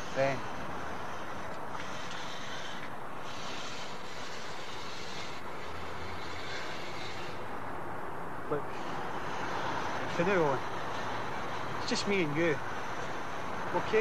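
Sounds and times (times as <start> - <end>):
distant engines rumbling: 0.0 - 14.0.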